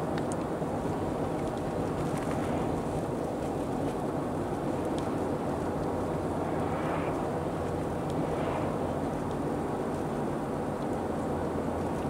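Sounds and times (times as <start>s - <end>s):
vehicle cabin road rumble: 0.0s - 12.0s.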